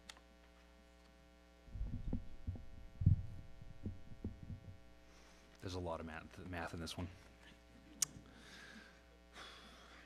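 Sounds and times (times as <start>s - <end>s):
muffled thumps on lectern microphone: 1.8s - 4.8s.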